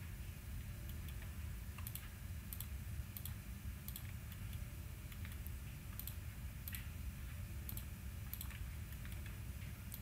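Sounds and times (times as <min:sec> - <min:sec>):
faint low hum: 0:00.0 - 0:10.0
computer mouse clicking: 0:00.8 - 0:06.9, 0:07.6 - 0:10.0.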